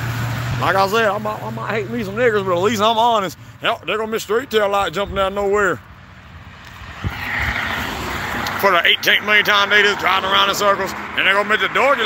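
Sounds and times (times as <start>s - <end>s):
car passing: 0.0s - 12.0s.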